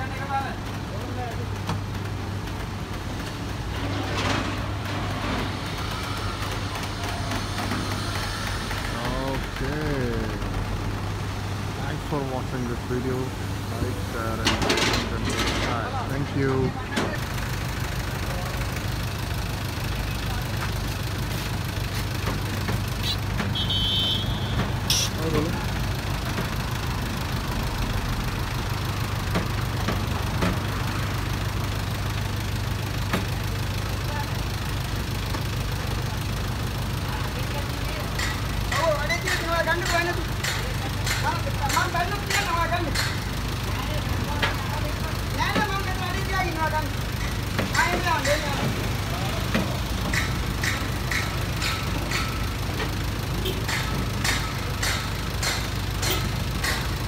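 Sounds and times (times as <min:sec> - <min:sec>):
truck engine idling: 0:00.0 - 0:57.0
voices talking: 0:05.2 - 0:17.2, 0:17.8 - 0:26.7, 0:35.6 - 0:56.9.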